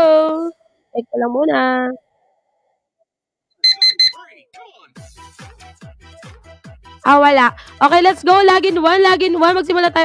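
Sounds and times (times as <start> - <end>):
short high beeps: 3.6 - 4.2
timer alarm beeping: 3.6 - 4.2.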